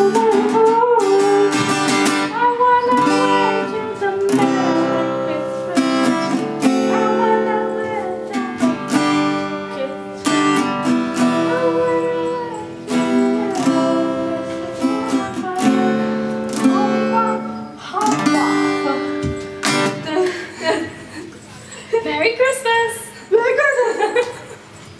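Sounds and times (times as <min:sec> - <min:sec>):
acoustic guitar strumming chords: 0:00.0 - 0:21.2.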